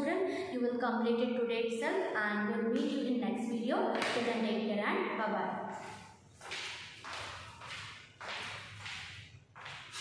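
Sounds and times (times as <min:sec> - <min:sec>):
soft swishing footsteps: 0:05.7 - 0:10.0.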